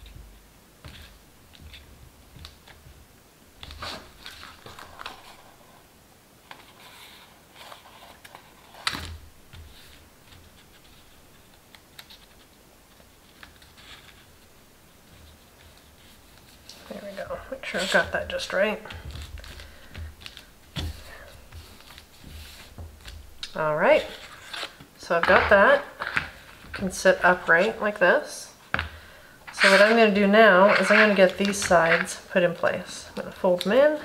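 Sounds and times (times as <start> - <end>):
paper rustling: 3.6 - 5.6, 6.5 - 27.8, 28.9 - 32.9.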